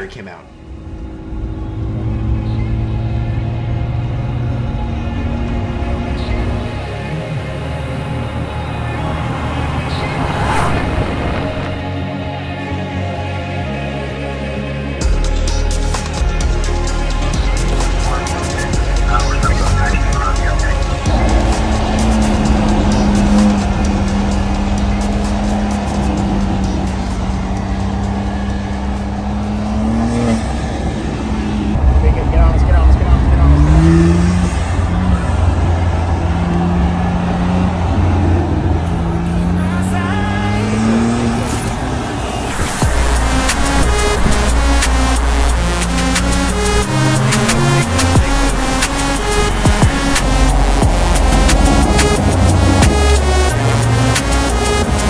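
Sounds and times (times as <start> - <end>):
car engine accelerating: 0.0 - 13.8, 14.8 - 55.0
background music: 0.0 - 55.0.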